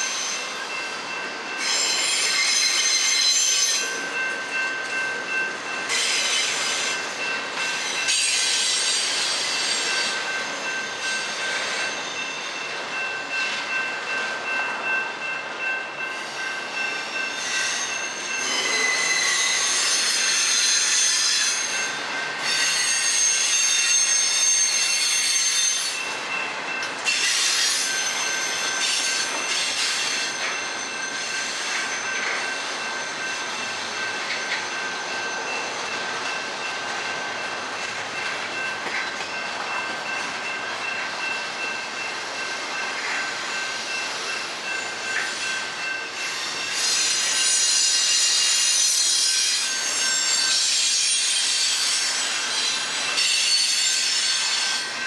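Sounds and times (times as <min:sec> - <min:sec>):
high wheel squeal: 0:00.0 - 0:01.0, 0:01.6 - 0:04.1, 0:17.0 - 0:26.1, 0:27.0 - 0:36.6, 0:43.4 - 0:55.0
freight train rolling rumble: 0:00.0 - 0:55.0.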